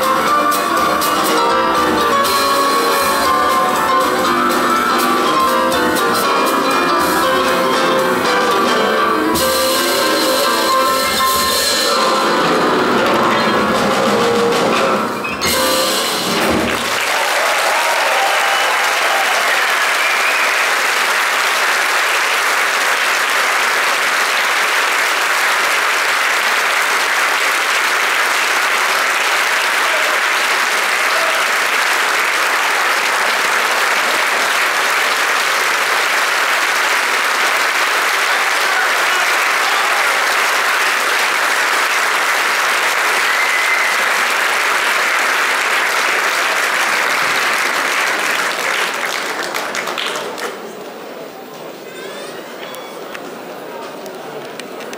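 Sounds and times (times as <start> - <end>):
large audience applauding: 15.9 - 51.2.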